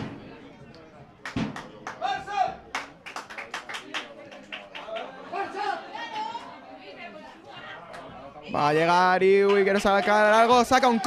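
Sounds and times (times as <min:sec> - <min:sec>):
crowd clapping in rhythm: 0:01.2 - 0:05.2.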